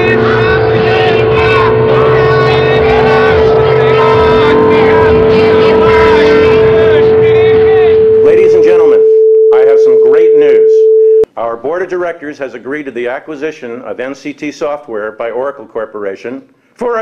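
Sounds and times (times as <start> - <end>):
overlapping voices: 0.0 - 8.5
sine test tone: 0.0 - 11.3.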